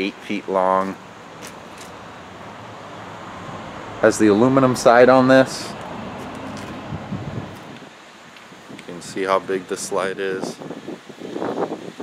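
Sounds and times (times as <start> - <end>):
distant road traffic hum: 0.0 - 9.8.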